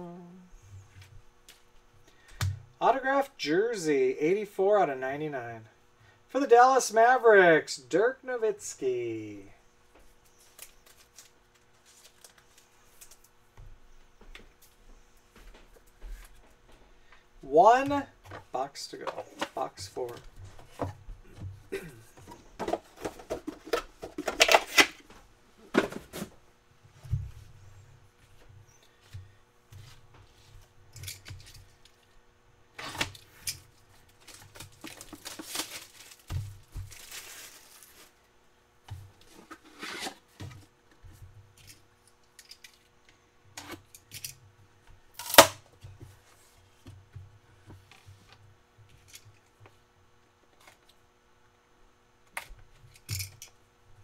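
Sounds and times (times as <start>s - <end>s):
plastic wrap tearing and crinkling: 34.0s - 38.2s.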